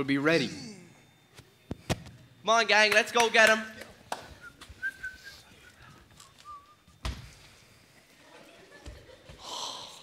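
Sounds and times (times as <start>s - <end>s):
sharp thump on stage floor: 7.0s - 7.4s.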